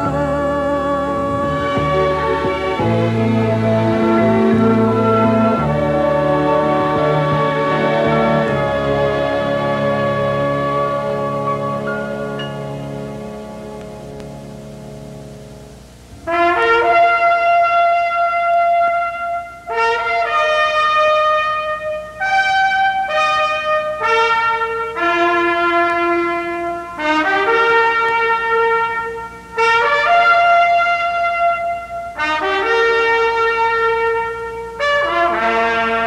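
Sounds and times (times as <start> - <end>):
brass ensemble fanfare: 1.4 - 15.2, 16.2 - 36.0.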